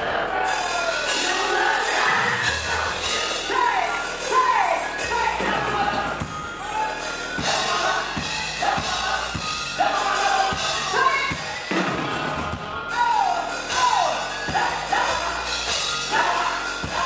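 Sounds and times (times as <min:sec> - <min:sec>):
gospel band playing: 0:00.0 - 0:17.0
lead and backing vocals singing: 0:00.0 - 0:17.0
steady drum beat: 0:00.0 - 0:17.0.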